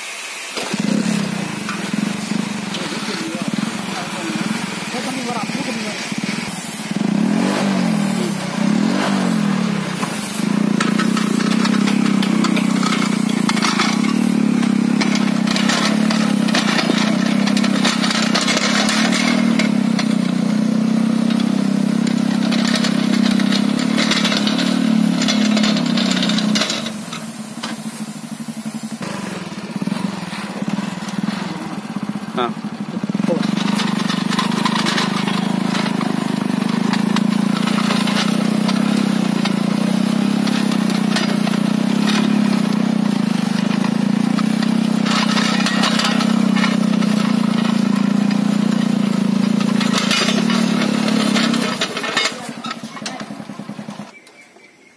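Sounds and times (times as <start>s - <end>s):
ridger cutting through soil: 0.0s - 54.2s
tiller engine running: 0.0s - 54.2s.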